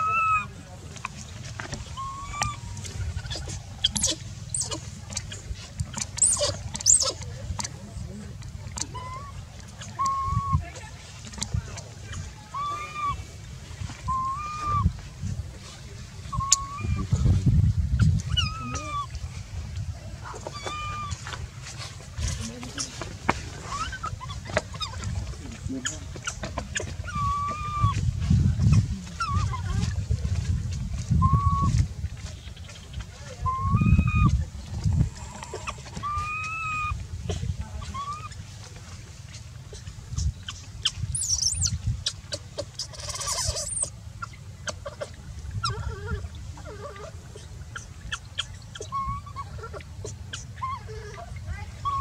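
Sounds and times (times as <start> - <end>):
monkey chirps and calls: 0.0 - 13.3, 13.9 - 15.0, 15.6 - 19.5, 20.3 - 37.0, 37.8 - 52.0
rustling of grass and dry leaves: 0.0 - 52.0
steady low rumble: 0.0 - 52.0.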